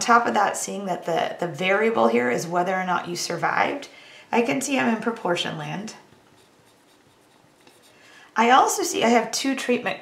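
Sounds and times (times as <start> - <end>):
pen scratching on paper: 6.1 - 8.1.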